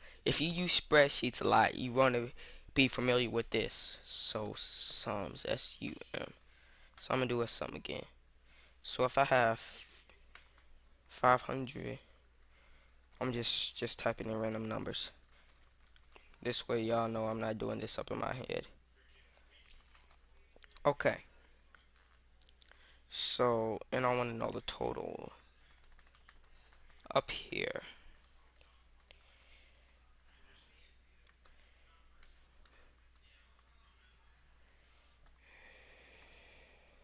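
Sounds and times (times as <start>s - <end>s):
computer keyboard and mouse clicks: 10.3s - 10.7s
computer keyboard keystrokes: 10.3s - 10.7s, 25.7s - 27.2s.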